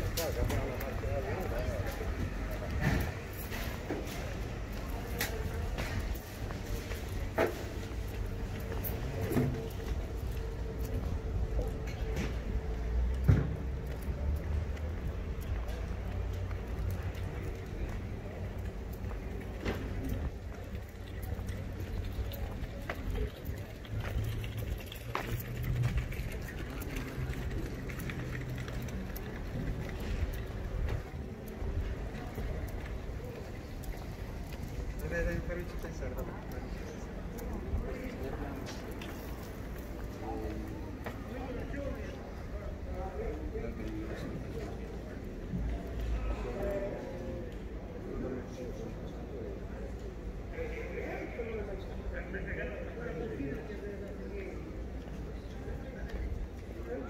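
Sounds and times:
distant voices: 0.0 - 57.0.

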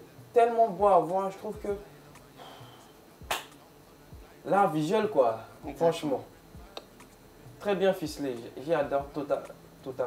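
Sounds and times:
finger snap: 3.2 - 3.7, 6.7 - 7.2.

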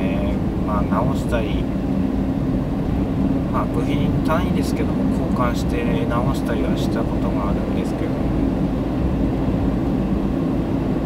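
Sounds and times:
car interior engine and tyre drone: 0.0 - 11.0.

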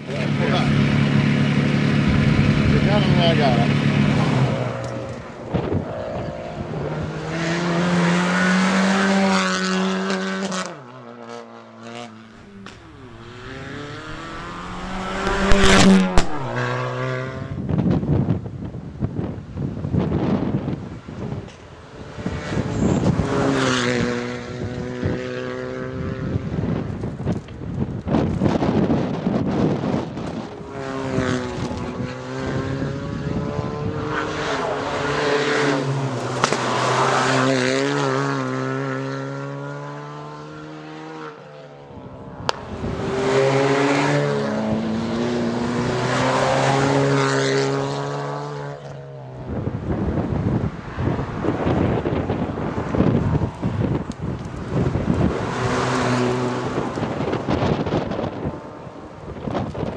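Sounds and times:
rally car engines revving past: 0.0 - 59.9.

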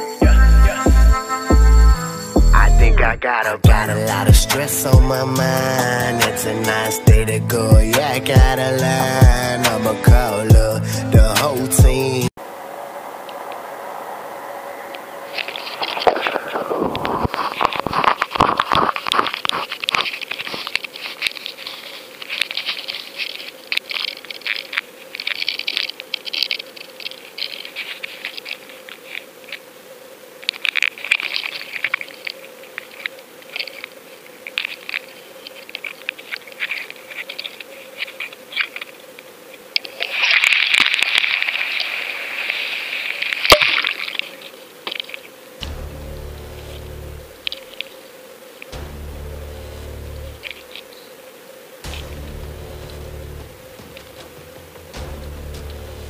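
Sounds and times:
faint steady hum: 12.4 - 56.0
camera handling crackles and scrapes: 14.9 - 29.7, 30.4 - 45.4, 50.4 - 51.0.

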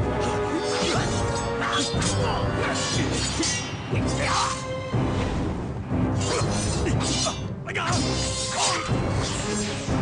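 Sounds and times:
blades clashing: 0.0 - 4.7, 6.1 - 10.0
orchestral score music: 0.0 - 10.0
fighters grunting and shouting: 0.2 - 4.7, 6.2 - 9.8.

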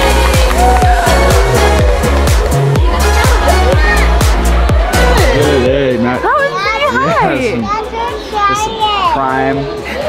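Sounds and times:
background music with bass: 0.0 - 10.0
children squealing and calling: 2.7 - 5.6.

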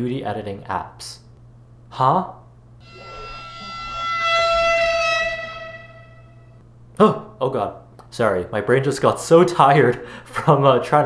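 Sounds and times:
sustained musical note: 2.8 - 6.6.

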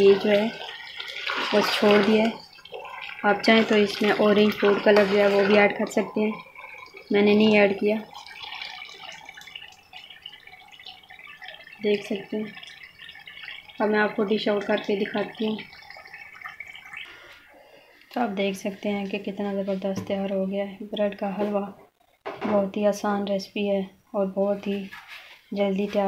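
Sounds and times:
woman speaking: 0.0 - 0.6, 1.5 - 2.4, 3.2 - 6.4, 7.1 - 8.1, 11.8 - 12.5, 13.8 - 15.6, 18.2 - 21.8, 22.4 - 24.9, 25.5 - 26.0
spoon stirring in steel pot: 0.1 - 11.8.

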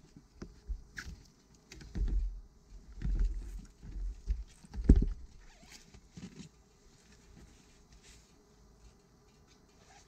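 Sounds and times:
jacket rustling on microphone: 5.3 - 10.0.

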